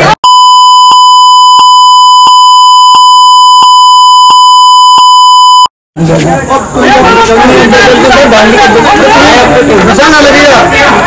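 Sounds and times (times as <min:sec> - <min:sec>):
high censor bleep tone: 0:00.2 - 0:05.7.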